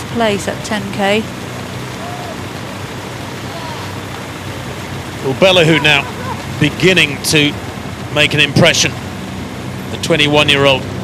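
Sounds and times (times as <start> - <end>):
rushing background noise: 0.0 - 11.0
faint distant voices: 5.2 - 7.3.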